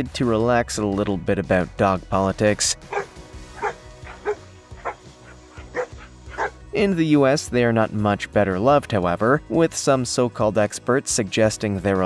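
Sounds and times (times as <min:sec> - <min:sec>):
background music: 0:00.0 - 0:12.0
dogs barking: 0:02.8 - 0:06.6.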